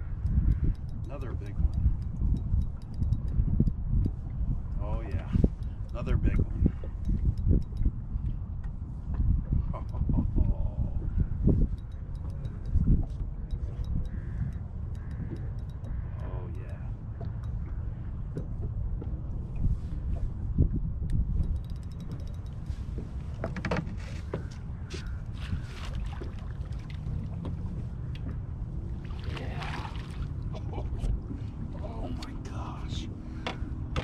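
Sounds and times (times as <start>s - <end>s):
water against boat hull: 0.0s - 32.5s
wind on microphone: 0.0s - 34.0s
light clicks and knocks: 21.4s - 25.1s.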